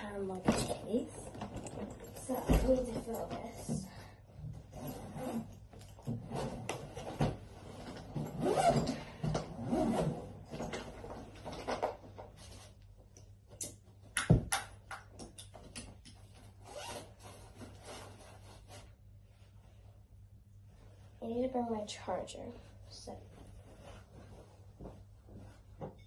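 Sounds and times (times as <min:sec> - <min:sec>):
suitcase handling and rubbing: 0:00.3 - 0:03.7, 0:04.5 - 0:12.8
suitcase zip being pulled open: 0:08.2 - 0:10.3.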